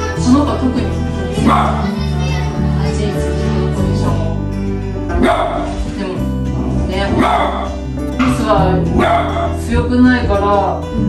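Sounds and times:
background music: 0:00.0 - 0:11.0
small dog barking: 0:01.4 - 0:01.9, 0:05.2 - 0:05.7, 0:07.2 - 0:07.8, 0:09.0 - 0:09.6.

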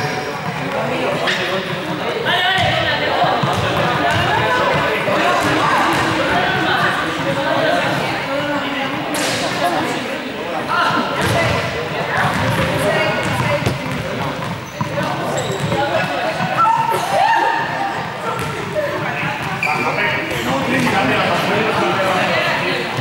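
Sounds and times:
balls bouncing on hall floor: 0:00.0 - 0:08.2, 0:11.2 - 0:23.0
group of people chattering: 0:00.0 - 0:23.0.

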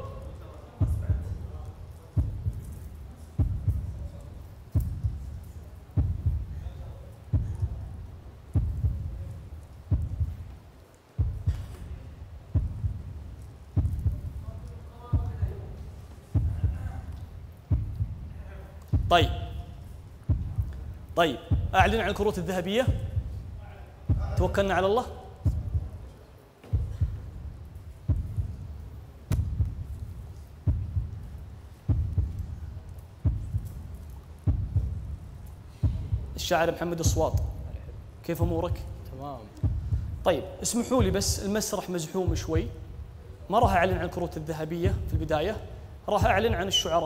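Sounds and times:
heartbeat thumps: 0:00.0 - 0:41.6, 0:42.2 - 0:46.9.

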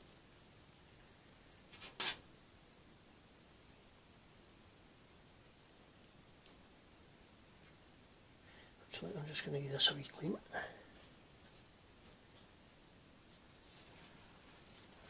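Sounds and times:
faint click: 0:06.4 - 0:06.6.

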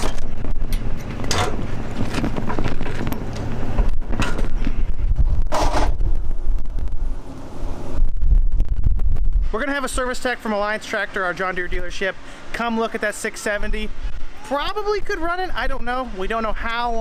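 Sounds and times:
wind buffeting microphone: 0:00.0 - 0:10.2.

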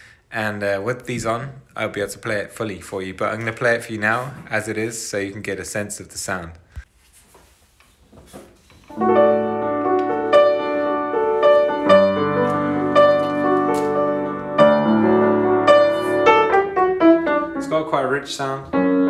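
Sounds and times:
piano chords: 0:08.9 - 0:19.0.

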